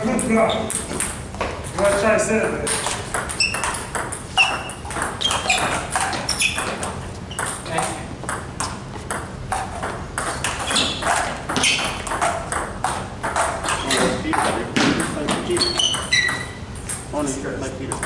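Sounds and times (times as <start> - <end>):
table tennis balls clicking: 0.1 - 17.1.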